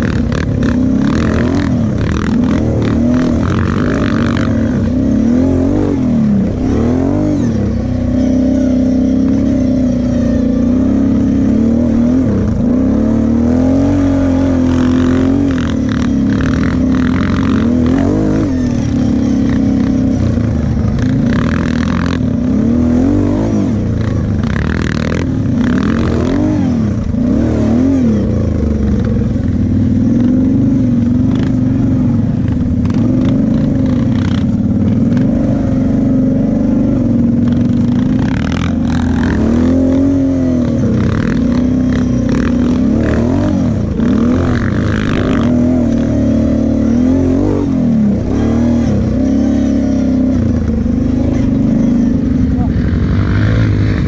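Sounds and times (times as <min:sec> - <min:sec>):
quad bike engine revving: 0:00.0 - 0:54.0.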